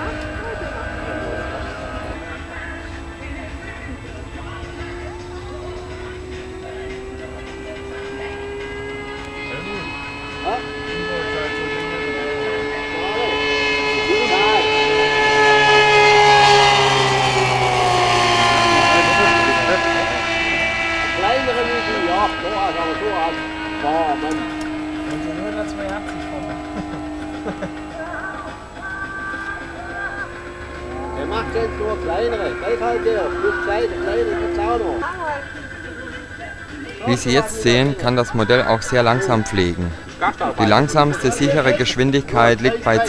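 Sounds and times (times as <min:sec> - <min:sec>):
model aircraft engine passing: 0:00.0 - 0:43.0.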